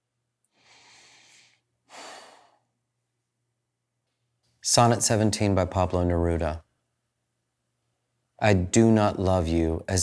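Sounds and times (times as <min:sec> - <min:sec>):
man breathing: 0:00.5 - 0:02.8.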